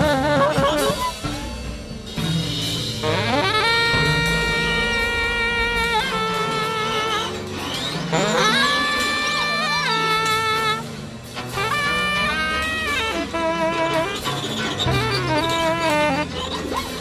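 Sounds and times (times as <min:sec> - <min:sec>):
tenor saxophone: 0:00.0 - 0:01.7, 0:03.0 - 0:17.0
low bass tones: 0:01.3 - 0:14.2.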